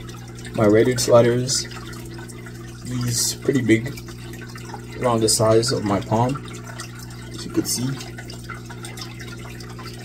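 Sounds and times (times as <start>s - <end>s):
water drips: 0.0s - 10.0s
water trickling: 0.0s - 10.0s.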